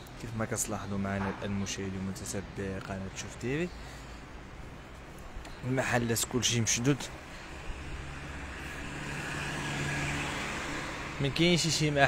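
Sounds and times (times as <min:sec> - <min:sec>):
road noise: 0:00.0 - 0:12.0
vehicle engine hum: 0:01.4 - 0:12.0.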